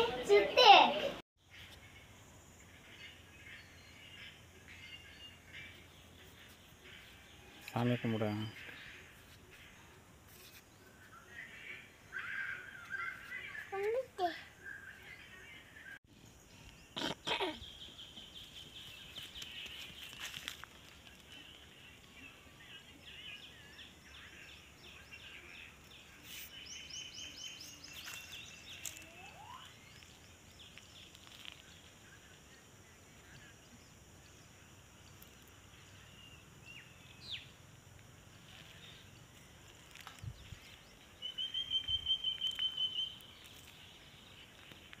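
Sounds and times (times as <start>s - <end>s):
high bird chirps: 26.5s - 31.6s, 39.8s - 45.0s.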